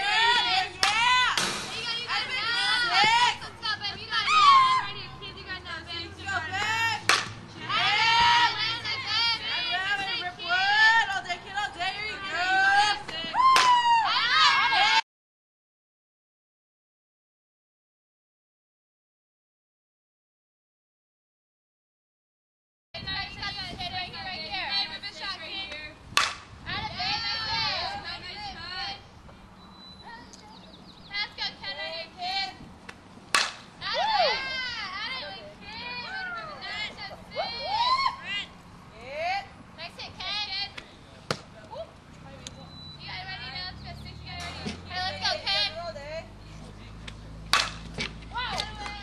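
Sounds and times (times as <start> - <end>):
girls shouting and cheering: 0.0 - 15.0, 26.6 - 29.0, 33.8 - 39.5, 48.3 - 49.0
bat hitting ball: 0.8 - 2.2, 7.0 - 7.4, 26.1 - 26.5, 33.3 - 33.8, 47.5 - 49.0.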